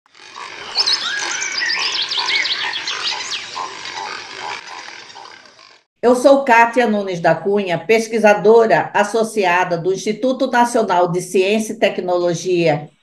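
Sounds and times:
lower repeated animal calls: 0.1 - 5.9
high animal chirps and whistles: 0.3 - 5.3.

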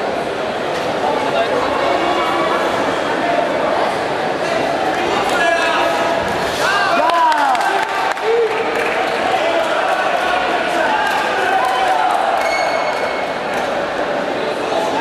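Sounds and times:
hum of crowd voices: 0.0 - 15.0.

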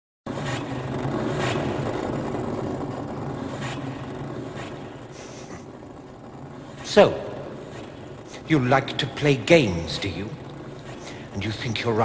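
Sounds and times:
low rumbling drone: 0.3 - 12.0.

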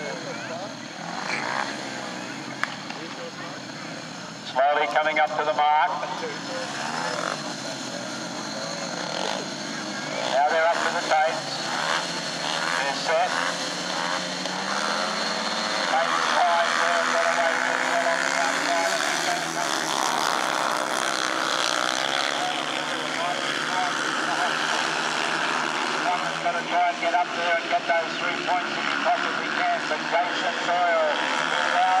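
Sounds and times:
motorcycle engines revving: 0.0 - 32.0
motorcycles racing: 0.0 - 32.0.

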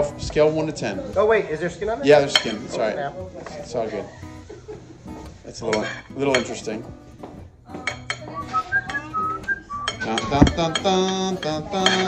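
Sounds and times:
person whistling: 8.3 - 10.2.

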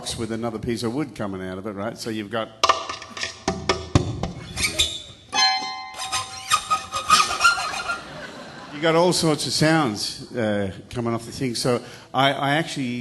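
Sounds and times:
ringing guitar string notes: 5.3 - 7.5.

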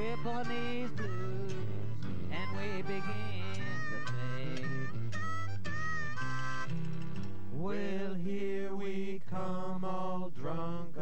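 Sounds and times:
jug band music: 0.0 - 7.0.

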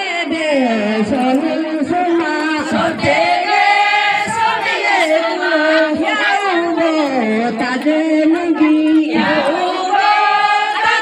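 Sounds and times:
women singing unaccompanied: 0.0 - 11.0.

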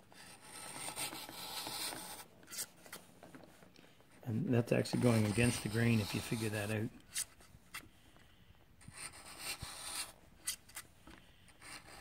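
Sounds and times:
chisel scraping slice through wood: 4.8 - 7.3.

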